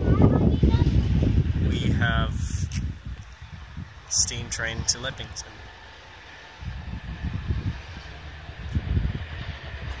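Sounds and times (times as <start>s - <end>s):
diesel train rumbling: 0.0s - 10.0s
wind buffeting microphone: 0.0s - 10.0s.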